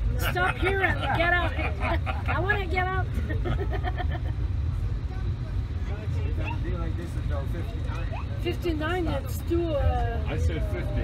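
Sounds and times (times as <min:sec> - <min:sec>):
people talking: 0:00.0 - 0:04.0, 0:04.7 - 0:11.0.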